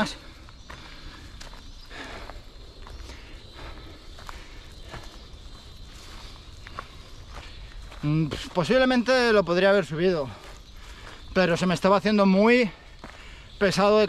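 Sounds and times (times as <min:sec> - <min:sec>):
footsteps on grass and dirt: 0:00.0 - 0:14.0.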